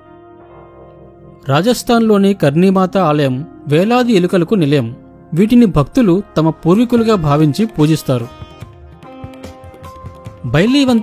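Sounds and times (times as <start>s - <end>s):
quiet instrumental music: 0.0s - 11.0s.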